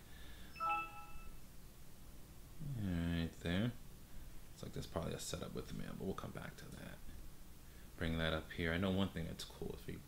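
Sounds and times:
computer notification chime: 0.6s - 1.4s.

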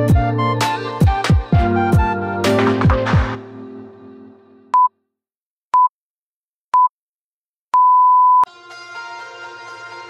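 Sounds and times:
music: 0.0s - 4.7s, 8.5s - 10.0s.

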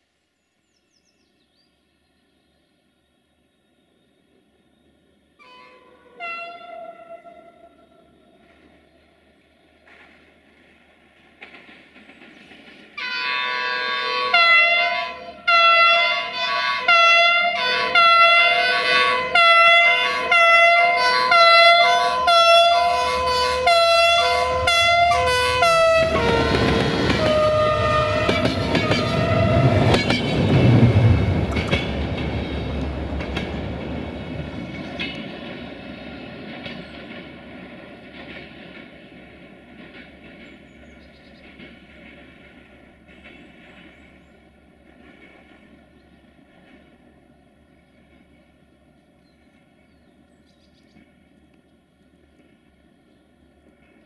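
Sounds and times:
train wheels rumbling on rails: 4.2s - 54.0s
locomotive horn blasts: 5.4s - 8.0s, 13.0s - 30.4s.

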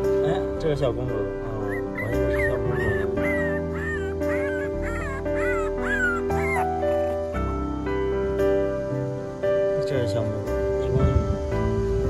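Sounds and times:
background music with held chords: 0.0s - 12.0s
puppies whining: 1.5s - 7.4s.

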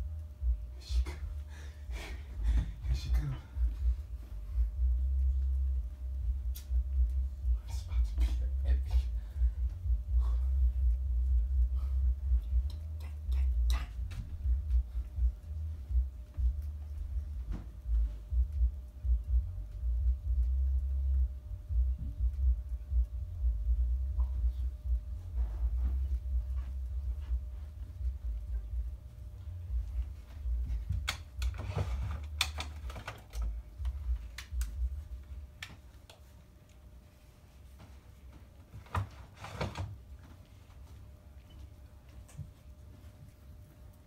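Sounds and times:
low thuds: 2.2s - 32.4s
footstep thumps: 13.9s - 20.6s, 21.7s - 33.0s.

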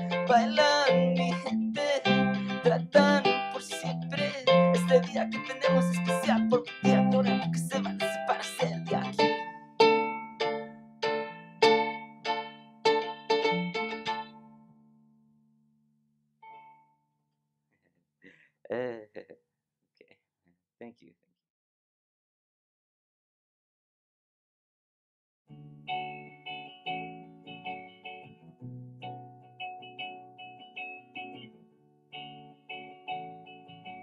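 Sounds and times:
clean electric guitar strumming: 0.0s - 14.8s, 25.5s - 34.0s.

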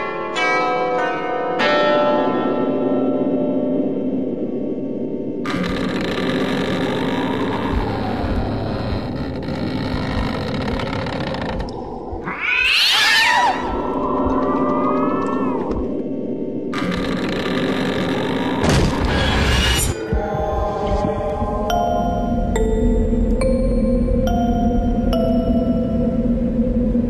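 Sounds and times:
dramatic background score: 3.9s - 27.0s
shrill screech: 12.2s - 15.6s, 16.8s - 20.0s.

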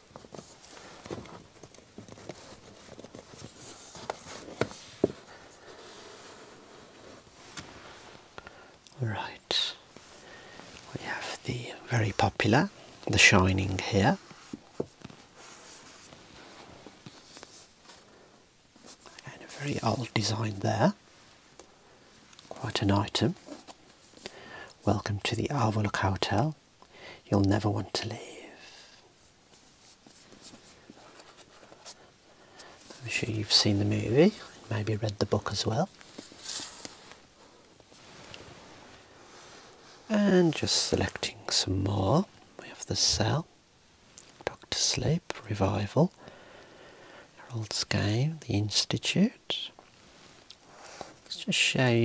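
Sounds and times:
person whispering: 8.9s - 9.9s, 10.8s - 14.2s, 19.1s - 21.0s, 22.5s - 23.5s, 27.3s - 29.1s, 32.9s - 35.9s, 40.0s - 43.5s, 44.4s - 46.1s, 47.4s - 49.8s.

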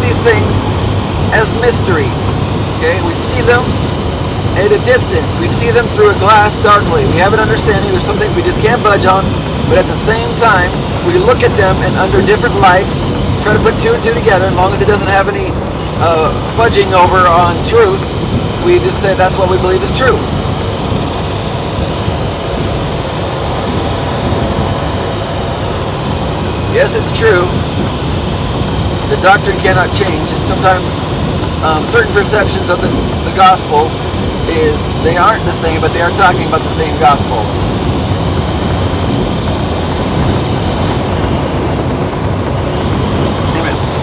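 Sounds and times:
vehicle engine and road noise: 0.0s - 44.0s.

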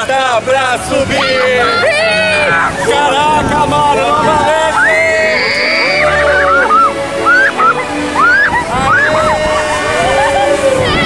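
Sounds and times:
loud background music: 1.0s - 11.0s
riders screaming: 1.0s - 11.0s.

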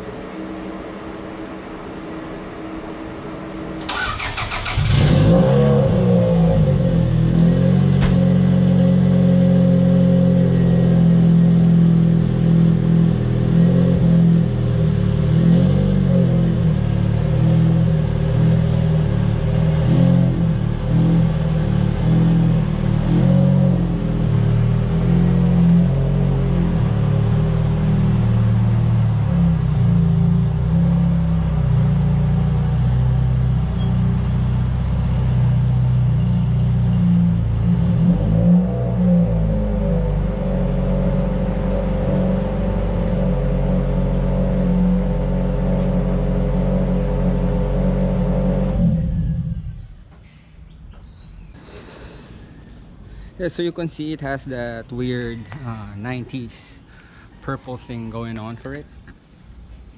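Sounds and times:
car engine idling: 39.3s - 51.6s.

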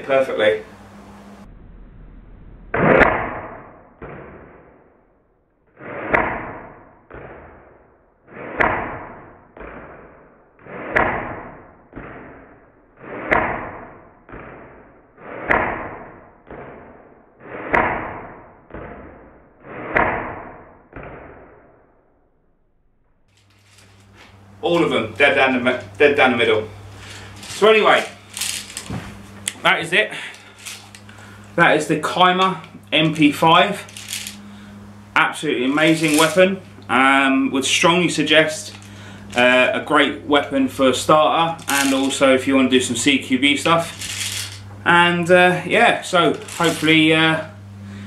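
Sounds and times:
airsoft gun shots: 2.7s - 4.8s, 5.8s - 7.7s, 8.4s - 16.6s.

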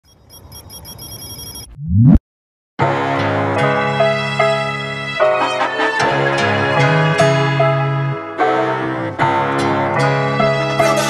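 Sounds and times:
high rapidly repeating ring: 0.1s - 1.7s.

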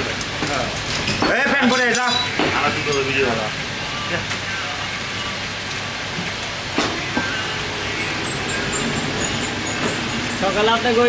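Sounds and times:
background din: 6.6s - 10.8s.

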